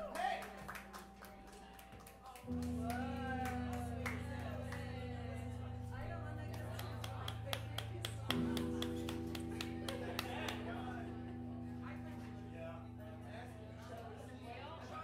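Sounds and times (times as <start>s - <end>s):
faint bar chatter: 0.0s - 15.0s
guitar chord ringing: 0.6s - 15.0s
guitar amplifier hum: 2.4s - 15.0s.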